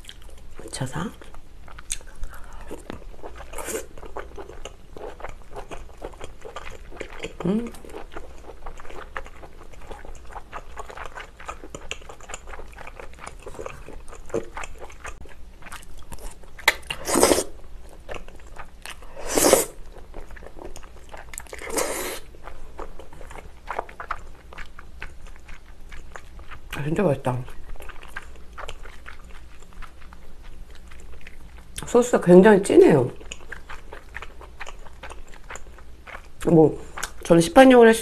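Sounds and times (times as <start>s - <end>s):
wet chewing and mouth clicks: 0.0s - 37.4s
loud noodle slurps: 16.7s - 17.6s, 19.2s - 19.8s, 21.6s - 22.3s.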